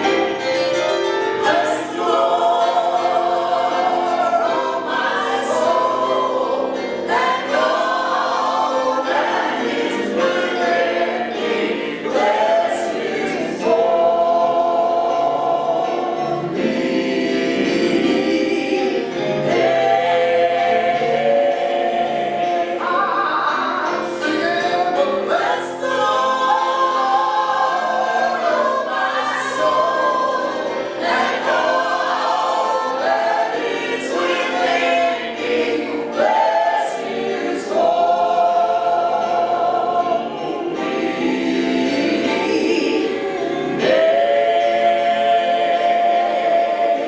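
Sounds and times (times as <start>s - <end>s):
group of voices singing: 0.0s - 47.0s.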